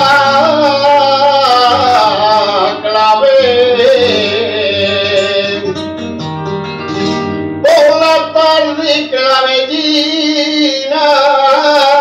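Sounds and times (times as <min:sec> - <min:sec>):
acoustic guitar: 0:00.0 - 0:12.0
flamenco singing: 0:00.0 - 0:12.0.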